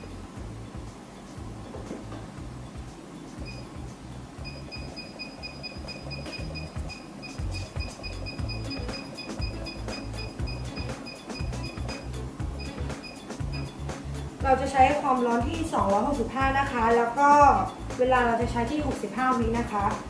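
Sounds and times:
background music with low beat: 0:00.0 - 0:20.0
short high beeps: 0:03.4 - 0:03.8, 0:04.4 - 0:13.8.

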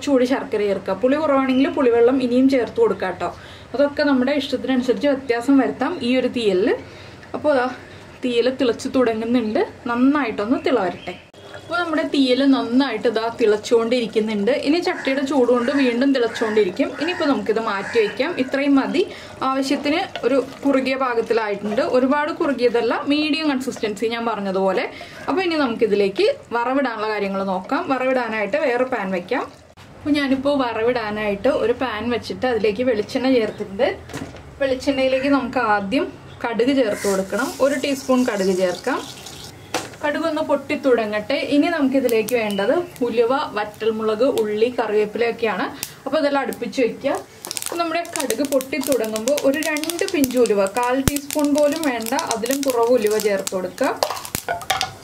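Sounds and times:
woman speaking: 0:00.0 - 0:06.8, 0:07.4 - 0:29.5, 0:34.6 - 0:39.1, 0:40.0 - 0:54.0
woman talking: 0:00.0 - 0:34.0, 0:34.6 - 0:39.1, 0:40.0 - 0:54.1
seeds popping in hot oil: 0:36.9 - 0:40.8, 0:41.4 - 0:55.0.

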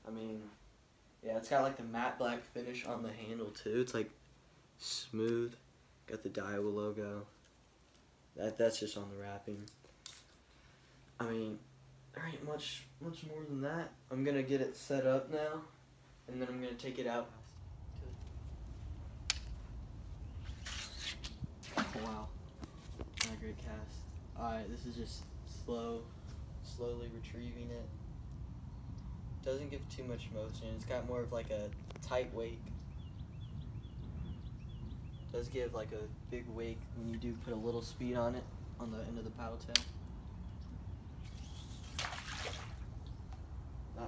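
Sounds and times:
wind rumble on microphone: 0:17.4 - 0:44.0
water splashing: 0:21.6 - 0:22.6, 0:41.8 - 0:43.1
high hiss of fishing line casting: 0:41.2 - 0:42.9.

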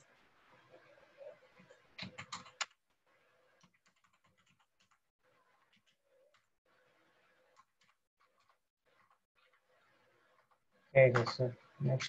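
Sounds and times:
typing on computer keyboard: 0:02.0 - 0:02.8, 0:03.6 - 0:05.0.

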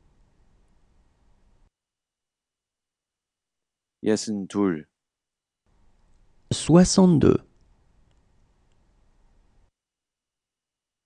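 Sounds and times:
person speaking: 0:06.5 - 0:07.5.

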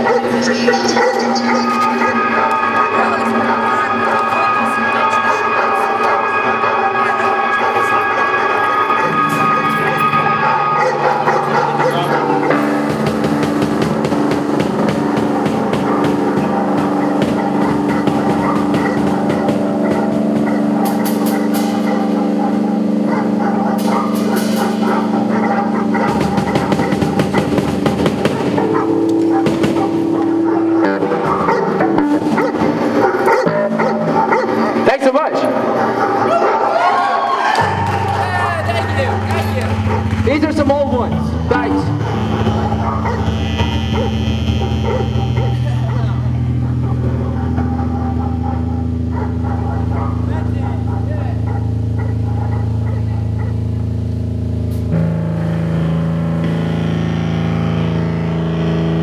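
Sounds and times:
amplified electric guitar chords: 0:00.0 - 0:59.0.

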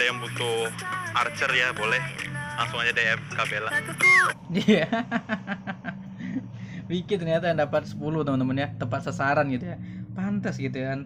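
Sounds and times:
rapid laughter: 0:04.5 - 0:06.4.

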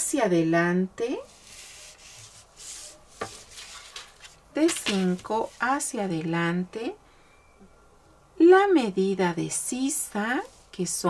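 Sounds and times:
ruler rubbing on paper: 0:01.2 - 0:04.3.

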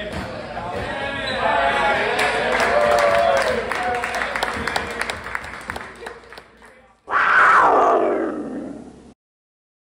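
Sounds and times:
big cat roaring: 0:07.1 - 0:09.1.

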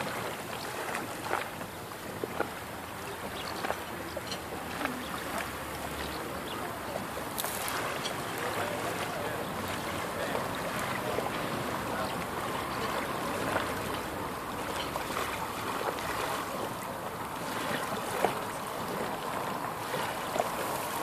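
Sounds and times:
small waves lapping and splashing: 0:00.0 - 0:21.0.

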